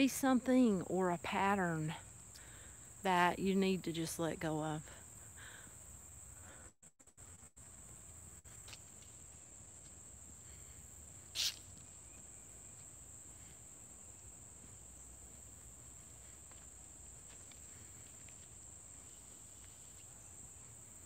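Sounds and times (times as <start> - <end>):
insects buzzing: 0.0 - 21.0
scuff or rustle: 11.2 - 12.2.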